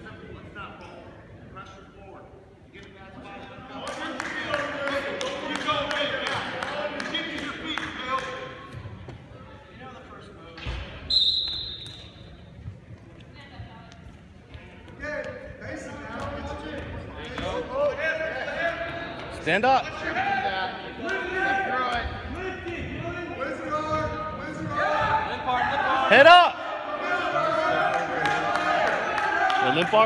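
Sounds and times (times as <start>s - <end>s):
referee whistle blast: 11.0s - 12.2s
people shouting in a gym: 19.9s - 30.0s.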